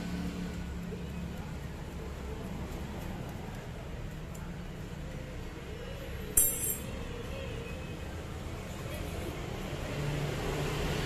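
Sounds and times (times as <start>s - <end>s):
sharp metallic clink: 6.4s - 7.0s.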